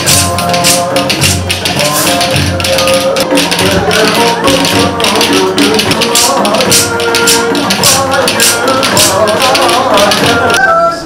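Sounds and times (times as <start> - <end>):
wooden spoons clacking: 0.0 - 10.6
folk dance music: 0.0 - 11.0.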